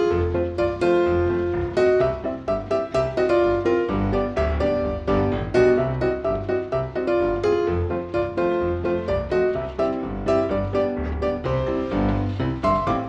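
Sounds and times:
piano music: 0.0s - 13.0s.

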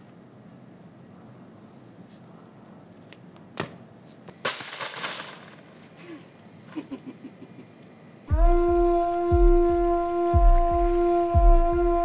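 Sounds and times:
low drum thumps: 8.3s - 12.0s
sustained wind-like note: 8.3s - 12.0s.

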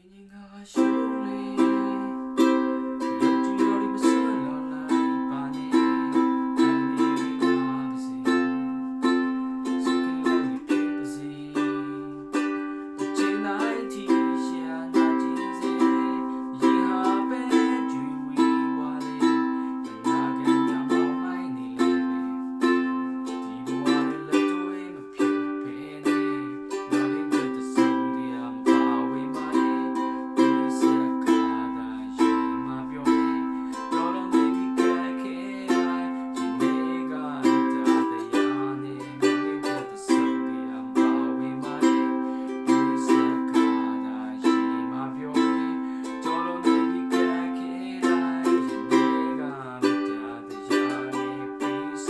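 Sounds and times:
ukulele strumming: 0.6s - 52.0s.

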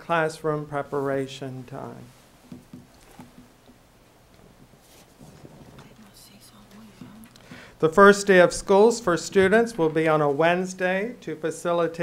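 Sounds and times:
murmured voices and whispering: 5.6s - 7.6s.

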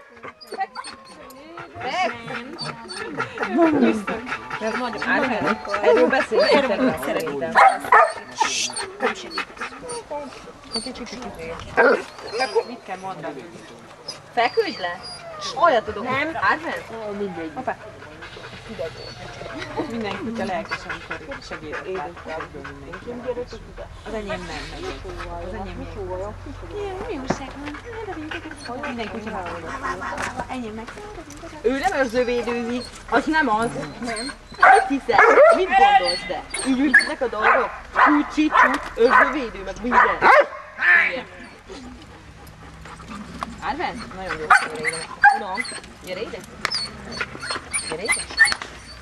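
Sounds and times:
dog barking: 7.6s - 8.3s, 34.6s - 35.7s, 37.0s - 40.8s, 44.5s - 45.5s.

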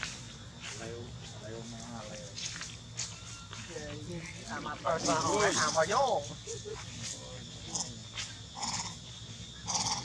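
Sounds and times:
monkey harsh calls: 9.6s - 10.0s.

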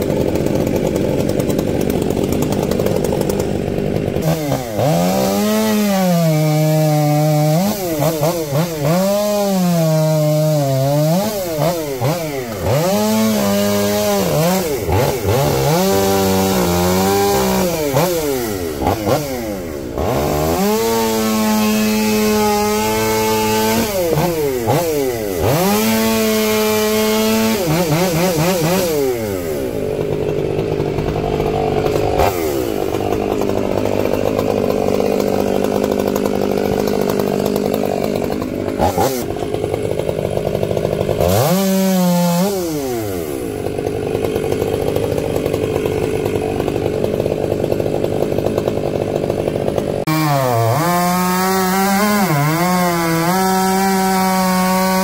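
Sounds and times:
chainsaw cutting a log: 0.0s - 55.0s.

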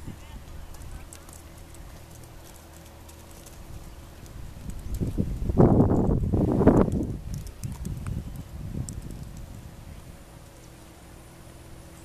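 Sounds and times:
hooves trotting on dirt: 0.2s - 9.7s.

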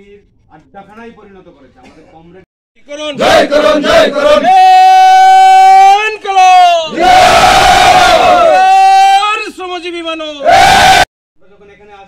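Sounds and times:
men shouting together: 3.1s - 9.4s, 10.4s - 11.1s.

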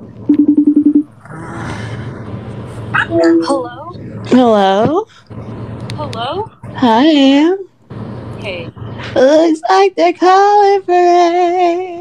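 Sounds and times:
low pulsing buzz tone: 0.0s - 12.0s.

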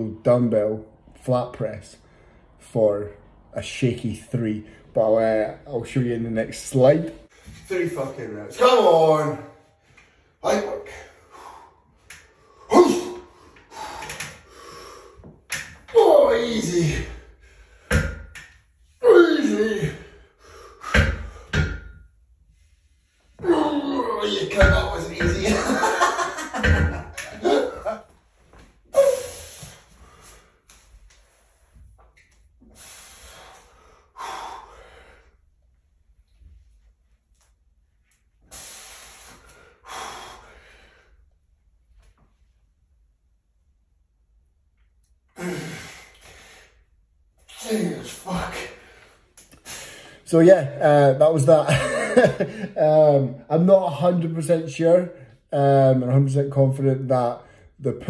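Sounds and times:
man breathing hard: 11.0s - 15.4s, 32.6s - 35.5s, 38.5s - 41.3s, 45.4s - 46.9s, 48.4s - 50.2s
man grunting: 12.7s - 13.3s, 15.9s - 17.2s, 19.0s - 20.1s, 23.4s - 25.9s, 27.3s - 28.0s, 47.5s - 48.8s.

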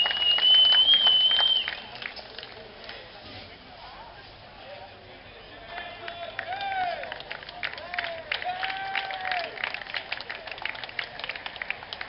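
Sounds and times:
long high whistle: 0.0s - 1.9s
crowd applause: 0.0s - 3.0s, 5.7s - 12.0s
murmur of voices: 0.9s - 12.0s.

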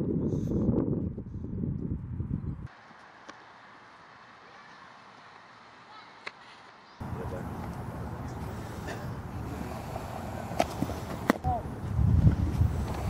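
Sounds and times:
wind rumbling on microphone: 0.0s - 2.7s, 7.0s - 13.0s.

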